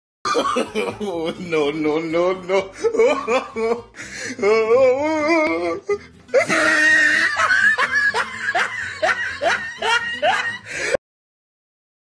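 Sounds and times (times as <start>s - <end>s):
person laughing in short bursts: 6.4s - 11.0s.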